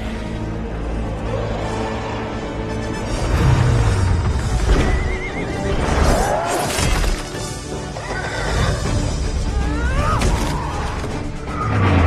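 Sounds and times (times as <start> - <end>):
orchestral film score: 0.0 - 12.0
horse whinnying: 4.8 - 5.7.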